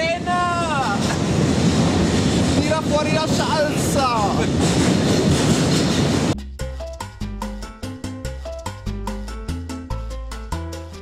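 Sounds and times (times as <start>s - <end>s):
train rumbling in tunnel: 0.0s - 6.4s
salsa music: 6.3s - 11.0s.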